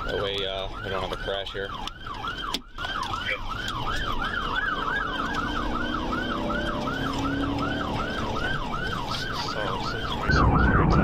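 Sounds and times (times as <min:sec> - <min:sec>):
police siren yelping: 0:00.0 - 0:11.0.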